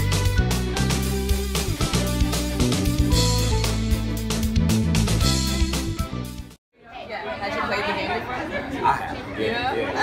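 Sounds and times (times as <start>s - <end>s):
music with guitar and drums: 0.0s - 6.5s.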